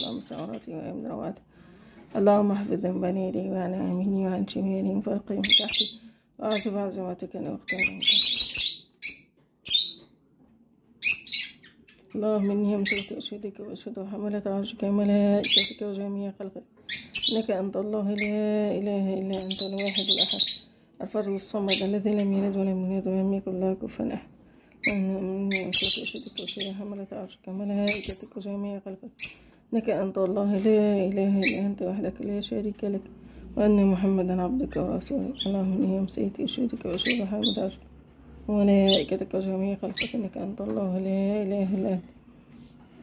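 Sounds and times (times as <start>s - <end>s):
birds chirping: 0.0s - 10.2s, 11.0s - 14.0s, 14.6s - 23.0s, 24.8s - 33.0s, 33.7s - 41.9s
bird chirps and squawks: 7.7s - 10.1s, 11.0s - 12.1s, 16.8s - 17.4s.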